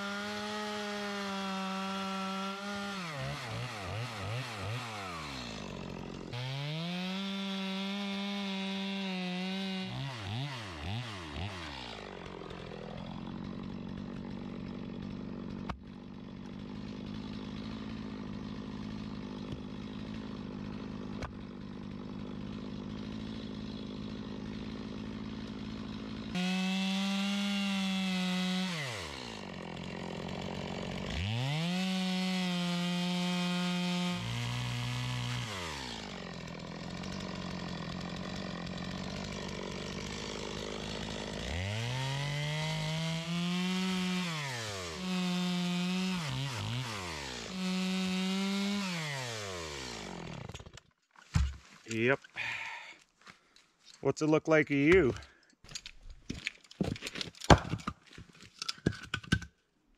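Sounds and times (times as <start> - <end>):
chainsaw idling and revving: 0.0 - 55.6.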